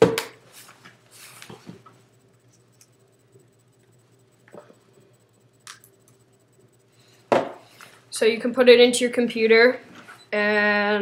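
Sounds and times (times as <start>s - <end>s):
faint low hum: 0.2s - 11.0s.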